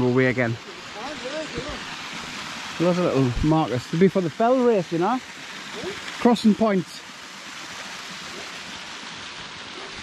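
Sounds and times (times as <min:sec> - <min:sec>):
stream cascading over rocks: 0:00.0 - 0:10.0.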